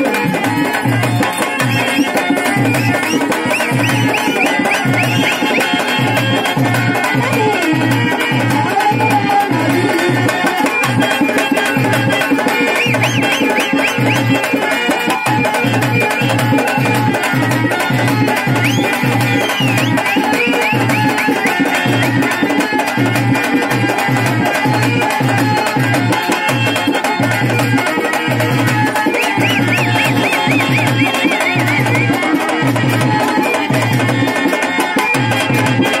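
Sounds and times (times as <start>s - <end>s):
clay pot drum: 0.0s - 36.0s
folk melody with ornamental runs: 0.0s - 36.0s
hand drum beat: 0.0s - 36.0s.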